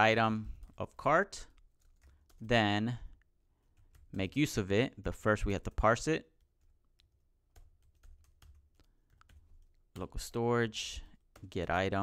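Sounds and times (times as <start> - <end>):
faint keyboard typing: 0.0 - 12.0.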